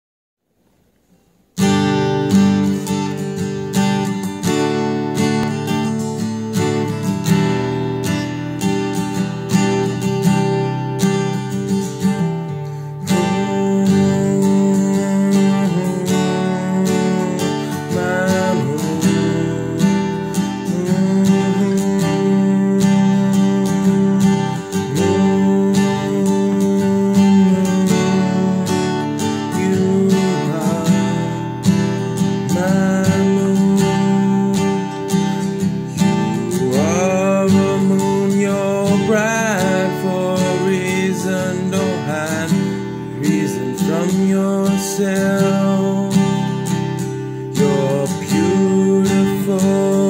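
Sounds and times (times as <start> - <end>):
acoustic guitar strumming chords: 0.6 - 50.0.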